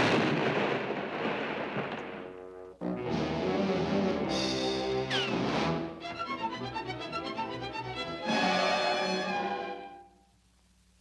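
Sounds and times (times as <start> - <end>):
cartoon dynamite explosion: 0.0 - 2.3.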